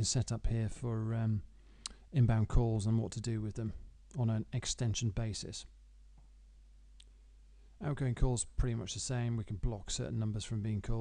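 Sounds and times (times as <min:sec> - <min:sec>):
man speaking: 0:00.0 - 0:01.5, 0:02.1 - 0:05.7, 0:07.8 - 0:11.0.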